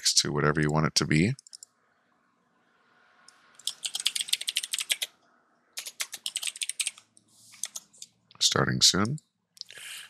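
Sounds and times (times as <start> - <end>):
typing on computer keyboard: 1.4 - 1.7, 3.6 - 5.1, 5.8 - 8.1.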